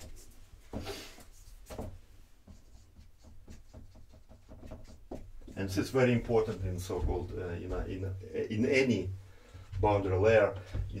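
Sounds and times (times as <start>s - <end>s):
marker writing on whiteboard: 0.0s - 5.8s.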